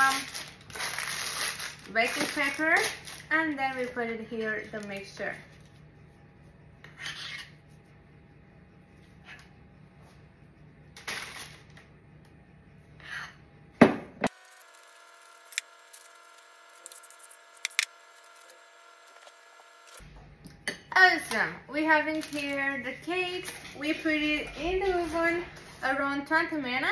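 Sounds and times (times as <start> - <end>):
metal spoon scraping ceramic bowl: 6.9 - 7.6.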